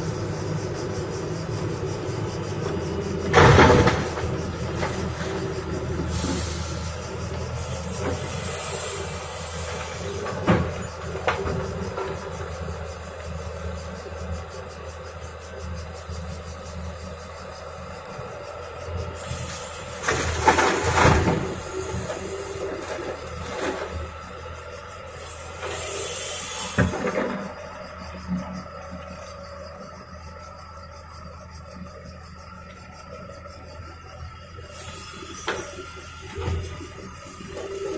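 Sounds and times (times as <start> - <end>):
diesel engine running: 0.0 - 37.9.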